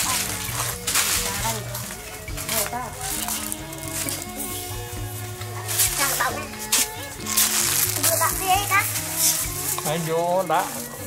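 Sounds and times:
background music with low notes: 0.0 - 11.0.

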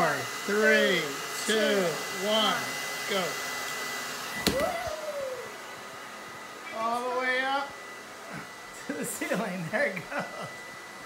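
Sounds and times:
hair dryer blowing: 0.0 - 11.0.

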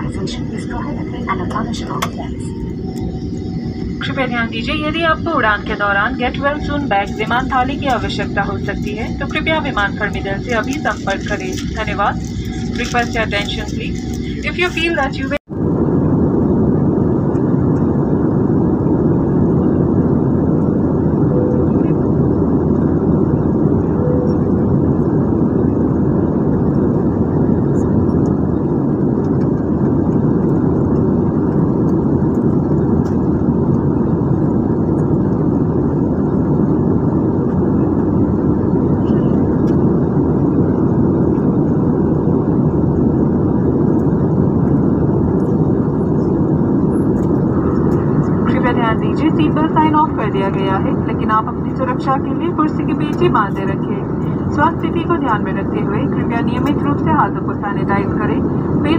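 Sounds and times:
jet engine roar in cabin: 0.0 - 58.9.

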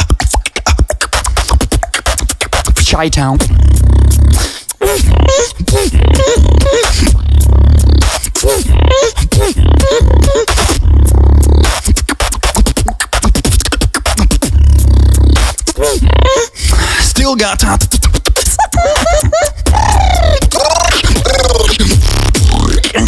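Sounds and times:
beatbox clicks and snare hits: 0.0 - 7.2, 7.8 - 8.7, 9.3 - 16.1, 17.6 - 23.0
beatbox vocal bass: 0.0 - 23.0
pitched vocal hums: 0.0 - 23.0.

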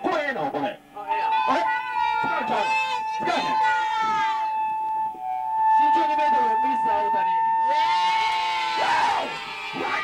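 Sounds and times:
high ringing tone: 0.8 - 8.8
person yelping and screaming: 8.7 - 10.0.

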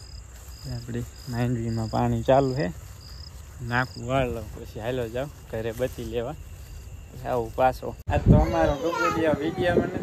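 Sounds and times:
crickets chirping: 0.0 - 10.0
man talking: 0.6 - 2.8, 3.6 - 6.4, 7.1 - 10.0.

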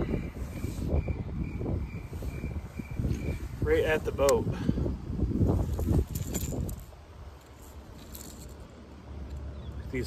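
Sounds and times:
fishing lure hooks jingling: 5.8 - 9.5.

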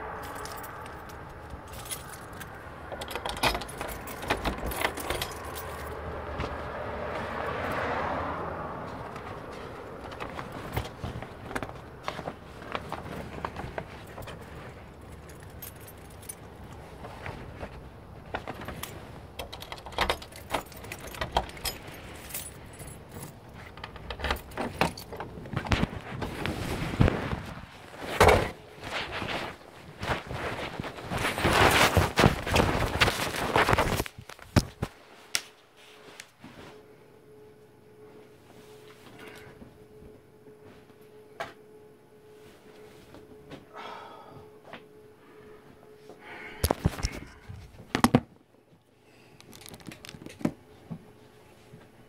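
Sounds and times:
low steady rumble: 0.0 - 7.4
car road rumble: 0.0 - 28.5
metallic clicking and jingling: 0.2 - 6.2, 13.8 - 16.9, 18.3 - 25.4.

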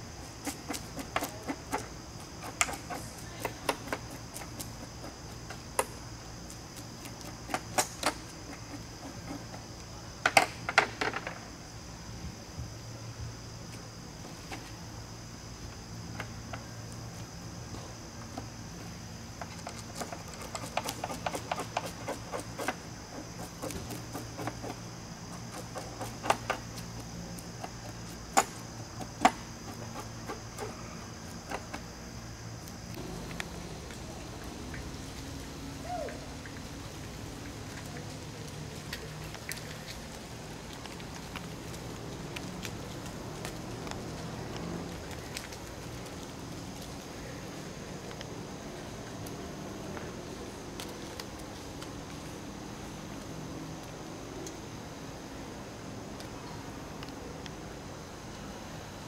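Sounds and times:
outdoor ambience: 0.0 - 59.0
steady high hum: 11.4 - 40.9.

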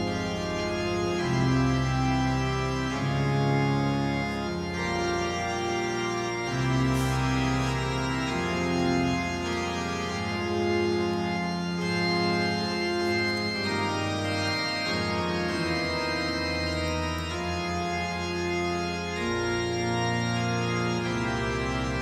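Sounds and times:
low organ bass note: 0.0 - 22.0
organ playing sustained chords: 0.0 - 22.0.

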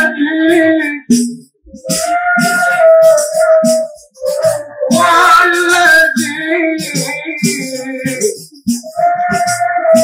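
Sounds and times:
boy singing into a microphone: 0.0 - 10.0
hand drum: 0.0 - 10.0
end-blown pipe flute: 1.8 - 7.9.

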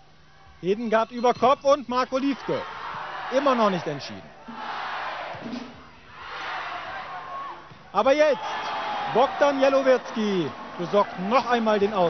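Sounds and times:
crowd cheering indoors: 2.2 - 12.0.

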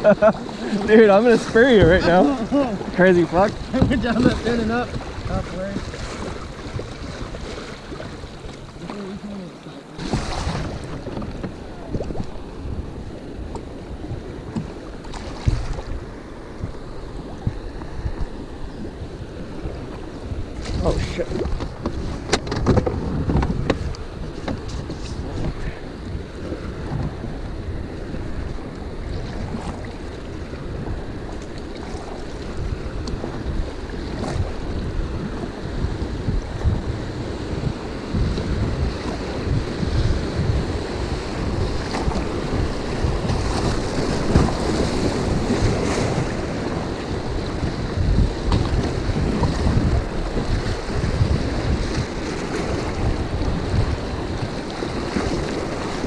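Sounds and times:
water slapping against kayak hull: 0.0 - 56.0
wind buffeting microphone: 0.0 - 56.0.

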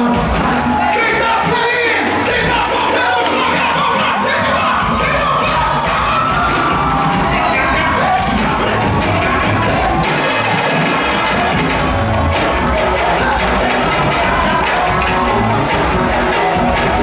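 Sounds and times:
crowd cheering: 0.0 - 17.0
drum kit: 0.0 - 17.0
electric bass: 0.0 - 17.0
hand percussion: 1.4 - 17.0.

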